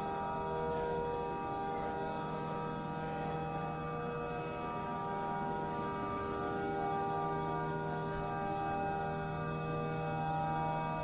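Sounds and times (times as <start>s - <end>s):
amplified cello drone: 0.0s - 11.0s.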